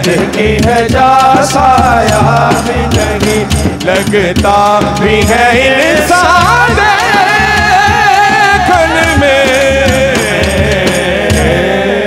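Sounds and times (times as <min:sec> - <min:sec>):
low drum beats: 0:00.0 - 0:12.0.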